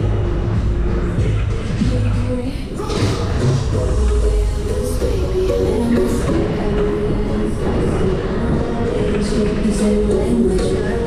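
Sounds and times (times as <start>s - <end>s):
loud fairground ride music: 0.0s - 11.0s.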